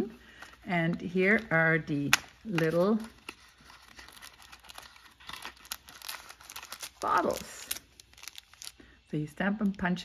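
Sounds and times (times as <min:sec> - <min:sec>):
plastic packaging crinkling: 0:00.3 - 0:09.0.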